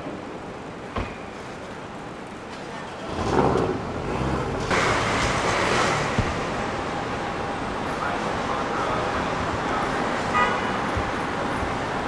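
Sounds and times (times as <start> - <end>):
rush of traffic noise: 0.0 - 12.0
vehicle engine close by: 3.0 - 9.6.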